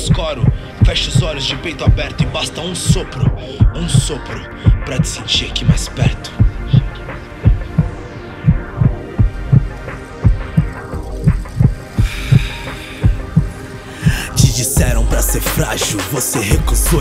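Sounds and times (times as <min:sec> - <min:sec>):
deep kick drum thumps: 0:00.0 - 0:15.8
hip-hop beat: 0:00.0 - 0:17.0
sustained chord hum: 0:00.0 - 0:17.0
bright noisy swell: 0:10.9 - 0:16.5.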